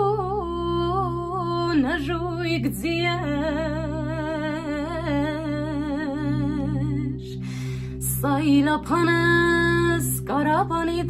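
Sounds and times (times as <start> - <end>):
woman singing folk song: 0.0 - 7.1, 8.0 - 11.0
low drone accompaniment: 0.0 - 11.0.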